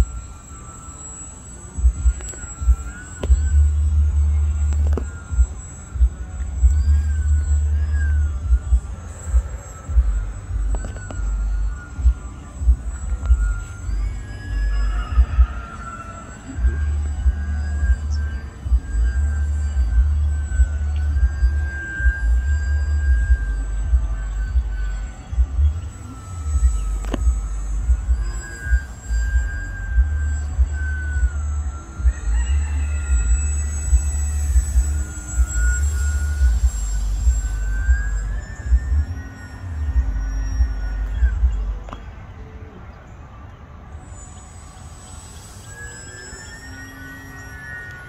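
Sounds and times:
model airplane motor whining: 0:00.0 - 0:48.0.

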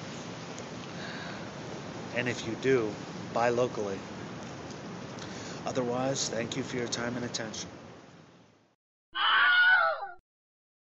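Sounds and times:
loud animal-like screech: 0:09.2 - 0:10.2.

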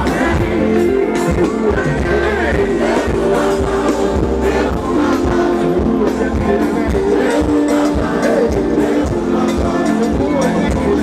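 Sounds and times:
live music over sound system: 0:00.0 - 0:11.0
voices singing together: 0:00.0 - 0:11.0.

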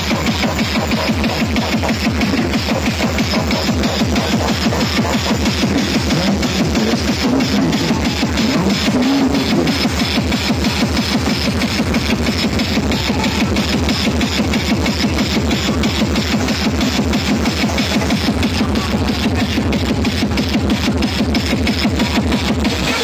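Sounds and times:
loud dance music: 0:00.0 - 0:23.0.

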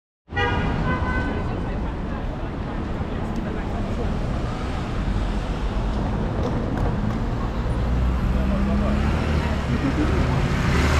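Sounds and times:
car horn toot: 0:00.3 - 0:01.4
city street traffic rumble: 0:00.3 - 0:10.9.

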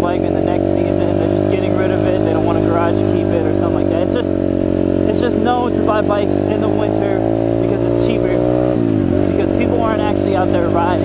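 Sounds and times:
dirt bike engine running: 0:00.0 - 0:11.0.

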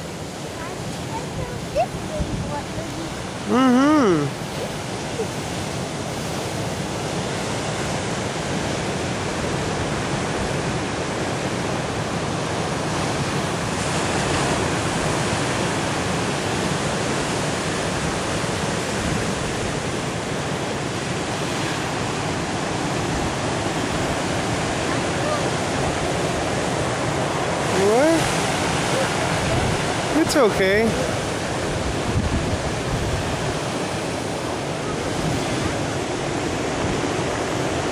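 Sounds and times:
surf breaking on pebble beach: 0:12.7 - 0:37.9.

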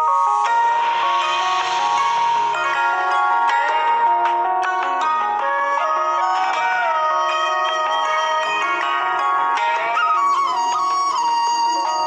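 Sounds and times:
sustained backing notes: 0:00.0 - 0:11.1
bamboo flute slow melody: 0:00.0 - 0:12.0.

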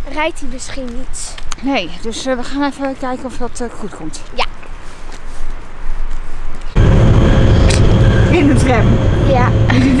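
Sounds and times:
rumble and hum inside tram: 0:06.3 - 0:10.0.

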